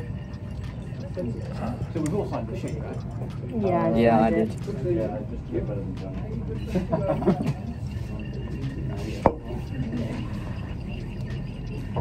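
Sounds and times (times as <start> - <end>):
glass cylinder knocking on bench: 7.5 - 12.0.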